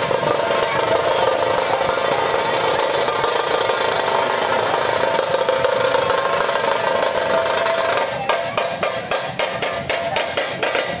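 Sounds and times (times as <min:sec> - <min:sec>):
barrel drums beaten with sticks: 0:00.0 - 0:11.0.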